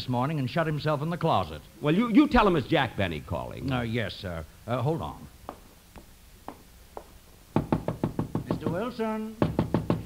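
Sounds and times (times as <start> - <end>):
knuckles knocking on a door: 7.6 - 10.0.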